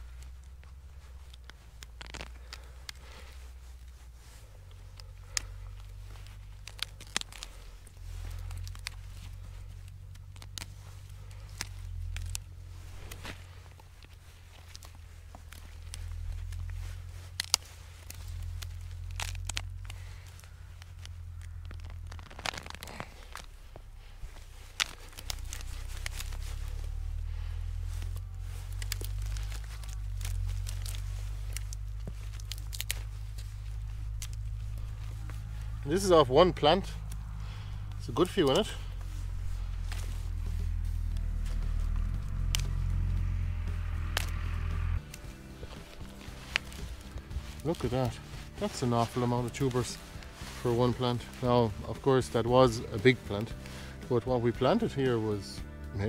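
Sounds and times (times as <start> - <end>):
low rumble: 0.0 - 56.0
roots snapping and tearing: 0.0 - 56.0
soil crumbling: 0.0 - 56.0.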